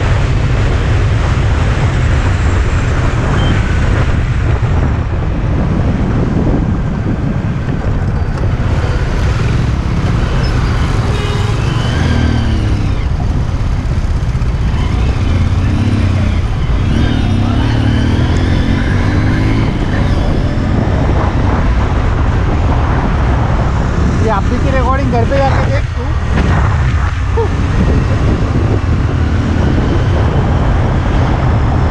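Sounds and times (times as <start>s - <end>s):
road traffic noise: 0.0s - 31.9s
wind rumble on microphone: 0.0s - 31.9s
scooter engine: 8.1s - 20.6s.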